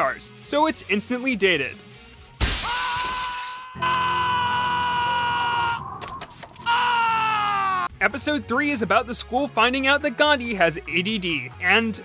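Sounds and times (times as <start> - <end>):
shattering crash: 2.4 - 3.7.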